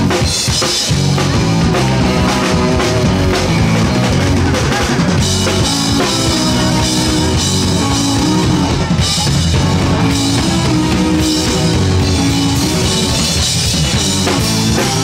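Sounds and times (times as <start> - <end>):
bass drum: 0.0 - 15.0
bass guitar: 0.0 - 15.0
electric guitar: 0.0 - 15.0.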